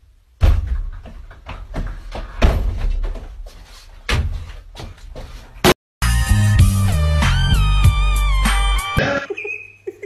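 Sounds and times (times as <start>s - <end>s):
man stumbling: 0.4s - 5.6s.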